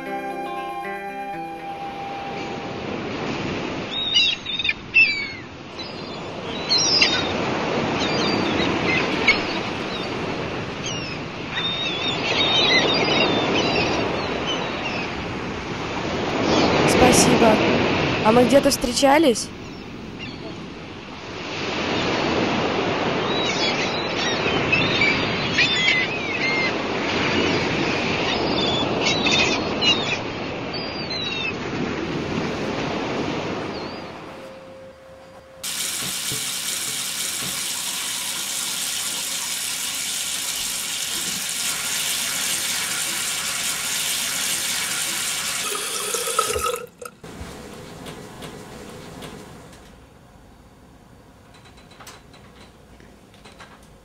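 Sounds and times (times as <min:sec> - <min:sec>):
beach noise: 0:00.0 - 0:03.9
tap running into sink: 0:35.6 - 0:49.4.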